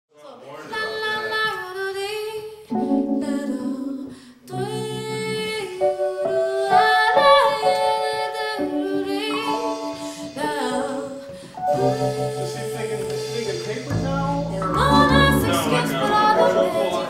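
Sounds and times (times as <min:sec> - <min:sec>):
woman singing wordless notes: 0:00.8 - 0:17.0
sustained harmony parts: 0:02.8 - 0:17.0.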